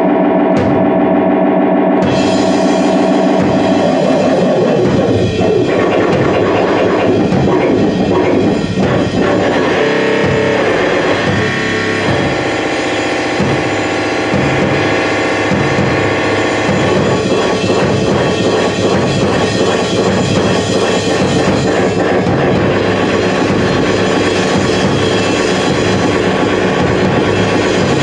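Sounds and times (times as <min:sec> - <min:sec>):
drum kit played fast: 0:00.0 - 0:28.0
steady pitched drone: 0:00.0 - 0:28.0.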